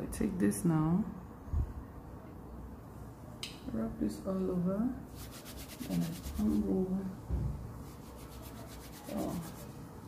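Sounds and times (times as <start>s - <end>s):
soft hair rustle: 5.1s - 7.2s, 7.8s - 9.9s
fingers rasping through hair: 5.2s - 6.7s, 7.8s - 9.7s.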